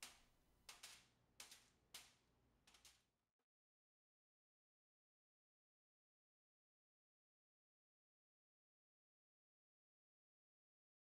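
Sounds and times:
soft quick snaps and taps: 0:00.0 - 0:03.0.

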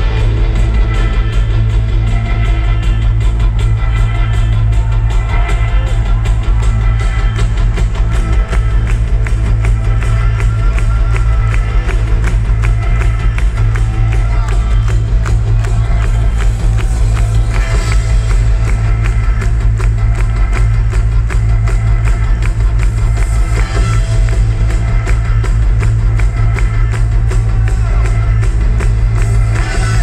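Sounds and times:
heavy booming bass: 0:00.0 - 0:30.0
live rock band playing: 0:00.0 - 0:30.0
steady drum beat: 0:00.0 - 0:30.0.

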